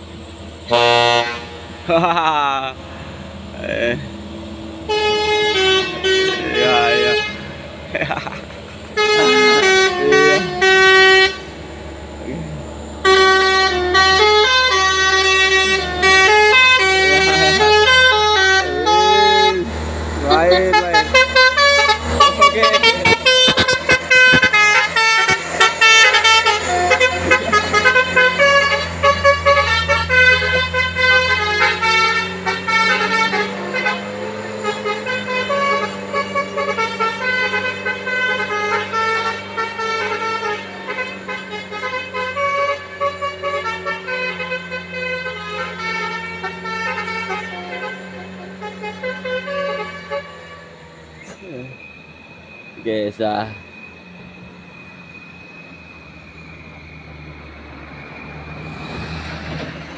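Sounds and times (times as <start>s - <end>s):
diesel truck engine: 0.0s - 59.9s
musical air horn tune: 0.7s - 1.5s, 4.9s - 7.6s, 9.0s - 11.5s, 13.0s - 50.7s.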